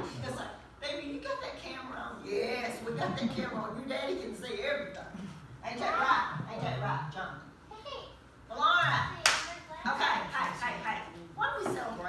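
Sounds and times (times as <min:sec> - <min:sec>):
hand clap: 0:09.2 - 0:09.6.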